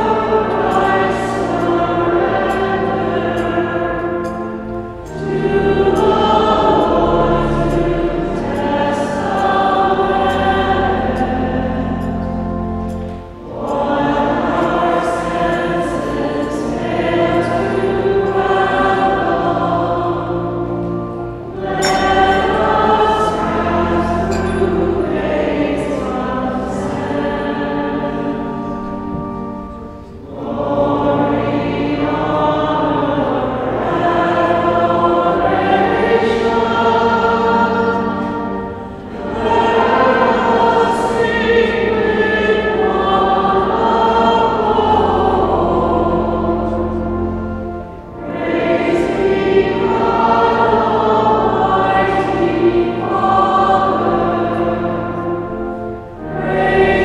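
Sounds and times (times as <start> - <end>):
choir singing a slow hymn: 0.0 - 57.0.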